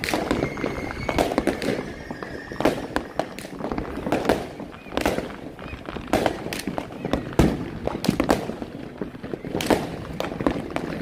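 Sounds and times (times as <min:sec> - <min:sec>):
fireworks bangs and crackles: 0:00.0 - 0:11.0.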